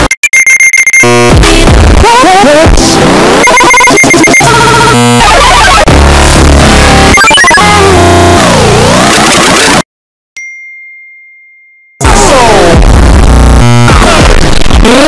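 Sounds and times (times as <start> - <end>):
distorted pop music mash-up: 0.0 - 9.8, 12.0 - 15.0
high ding: 10.4 - 12.0.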